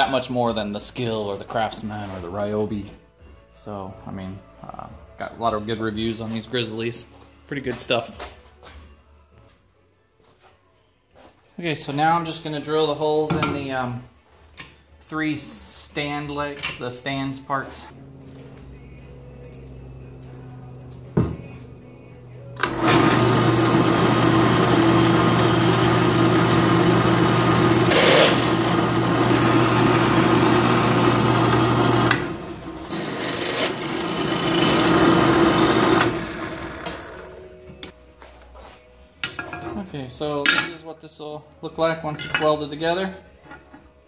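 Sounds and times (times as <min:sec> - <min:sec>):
drill bit cutting through steel: 0:22.6 - 0:37.1
drill press motor humming: 0:22.6 - 0:37.4.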